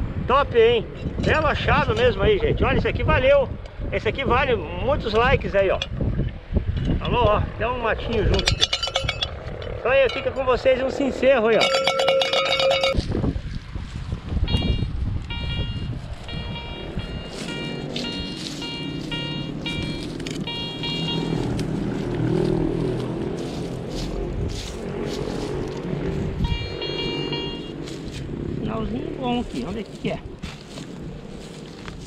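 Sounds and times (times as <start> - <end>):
metal animal bell ringing: 8.1 - 9.4, 10.0 - 10.5, 11.6 - 13.0, 14.6 - 21.4, 26.4 - 27.8
background music with high beeps: 14.5 - 21.4.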